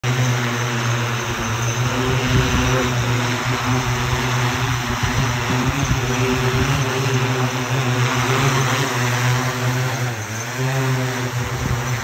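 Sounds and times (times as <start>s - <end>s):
drone propellers running: 0.0s - 12.0s.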